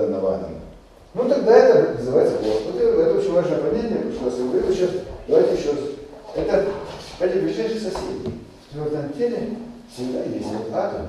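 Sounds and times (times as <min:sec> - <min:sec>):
man lecturing: 0:00.0 - 0:11.0.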